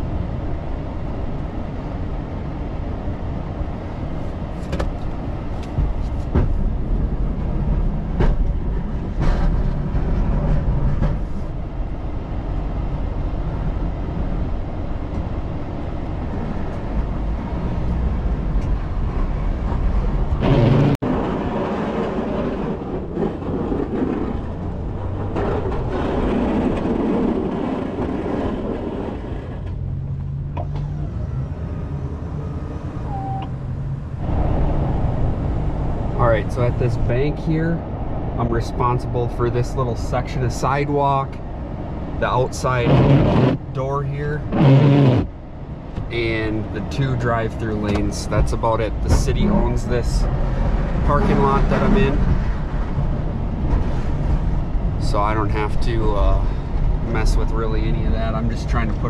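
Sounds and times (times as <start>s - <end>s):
pickup truck engine and tyre rumble: 0.0s - 59.0s
sharp clicks and knocks: 4.6s - 6.6s, 47.8s - 49.4s.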